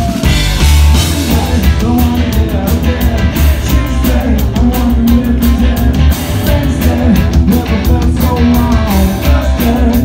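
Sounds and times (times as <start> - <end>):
double bass: 0.0 - 10.0
drum kit beat: 0.0 - 10.0
electric guitar: 0.0 - 10.0.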